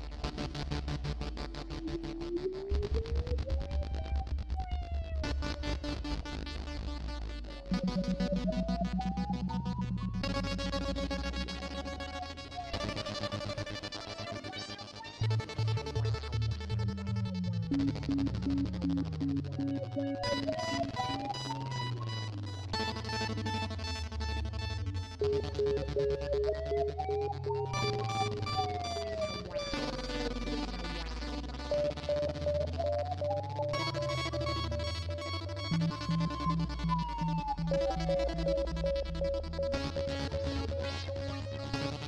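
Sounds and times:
electronic synthesizer music: 0.0 - 42.0.

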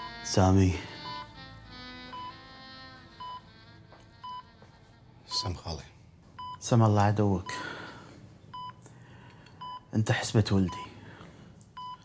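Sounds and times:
soft background music: 0.0 - 12.0
heart monitor beeping: 1.0 - 1.3, 2.1 - 2.4, 3.2 - 3.4, 4.2 - 4.5, 6.4 - 6.6, 8.5 - 8.8, 9.6 - 9.9, 10.6 - 11.0, 11.7 - 12.0.

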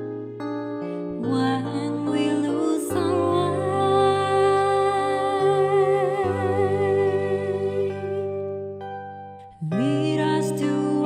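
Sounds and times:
soft instrumental accompaniment: 0.0 - 11.0
woman singing with vibrato: 1.2 - 8.3, 9.6 - 11.0.

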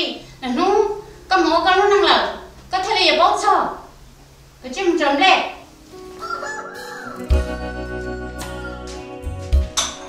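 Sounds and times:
soft background music: 4.7 - 10.0
rooster crowing: 6.1 - 9.2.

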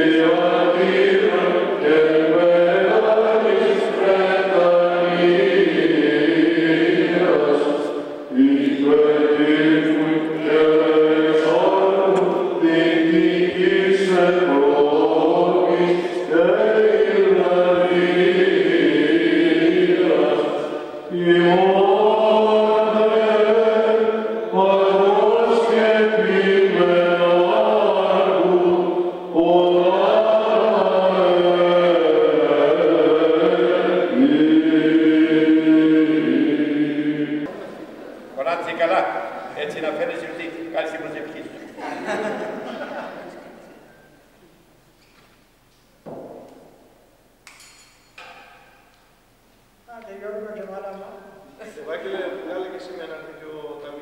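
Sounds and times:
group chanting: 0.0 - 39.6.

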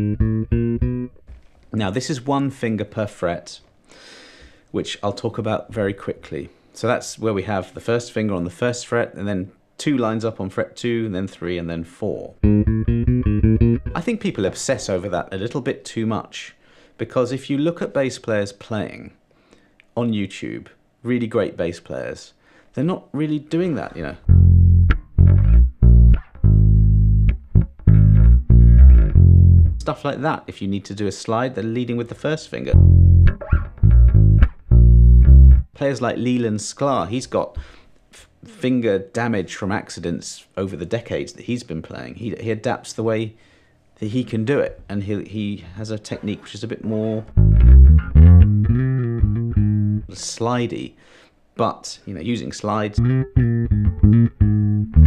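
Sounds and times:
electric bass notes fingerstyle: 0.0 - 1.3, 12.4 - 14.2, 24.2 - 29.9, 32.7 - 35.7, 47.2 - 50.2, 52.9 - 55.0.

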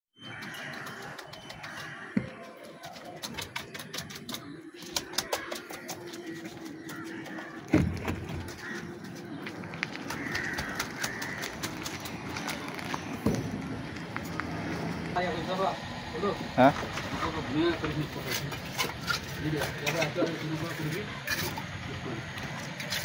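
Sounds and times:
birds calling: 0.2 - 23.0
loud thump: 7.7 - 8.4.

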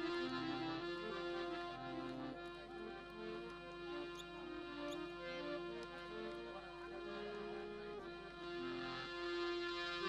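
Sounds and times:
harmonium playing held notes: 0.0 - 10.0.

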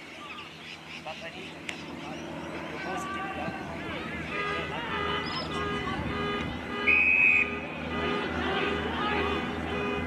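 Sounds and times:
whistle blast: 4.4 - 8.3.

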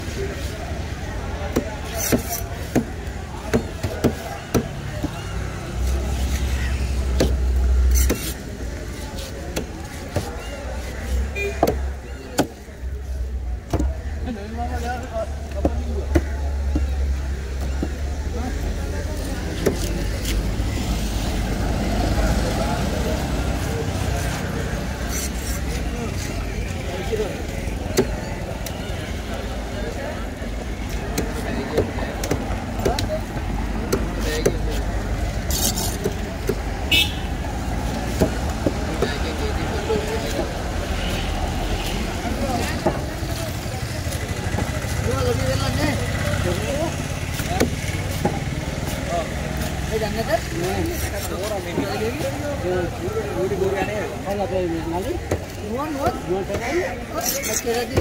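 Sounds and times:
low traffic rumble: 0.0 - 58.0.

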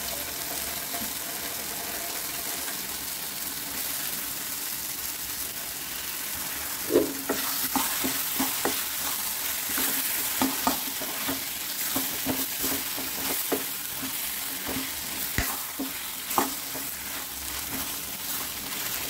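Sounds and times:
frying sizzle: 0.0 - 19.0
spoon scraping and tapping pan: 6.9 - 19.0.

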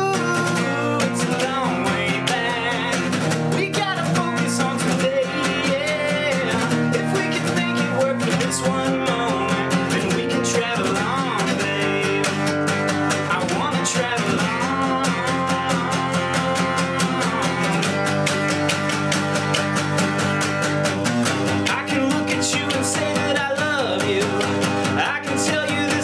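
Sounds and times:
man singing: 0.0 - 19.1, 21.5 - 26.0
acoustic guitar strumming: 0.0 - 26.0.

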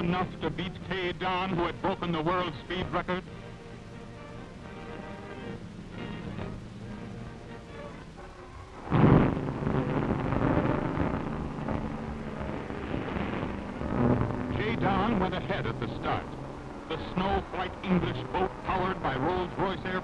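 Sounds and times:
film soundtrack music: 0.0 - 20.0
loud rushing roar: 0.0 - 20.0.

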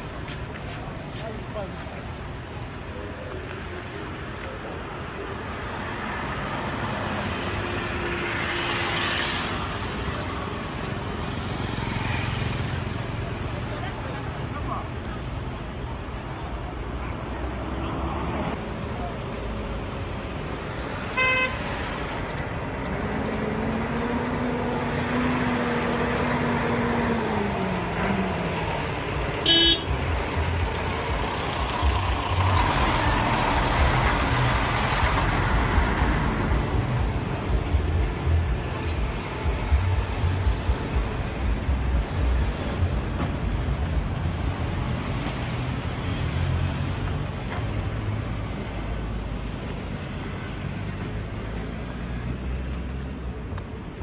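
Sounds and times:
traffic passing: 0.0 - 54.0
vehicle engine hum: 0.0 - 54.0.

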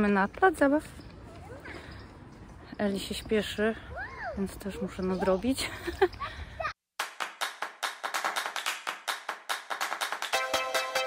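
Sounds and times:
person speaking outdoors: 0.0 - 6.8
percussive music with clap-like hits: 7.0 - 11.0.

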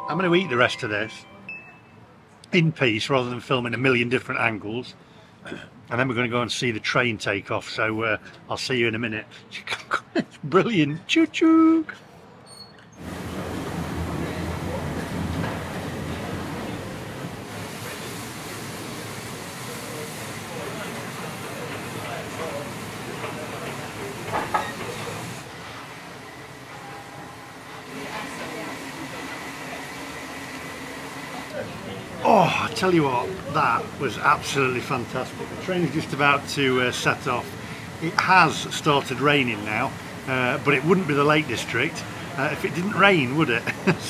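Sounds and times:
steam hissing from locomotive: 13.0 - 31.6, 32.2 - 44.0.

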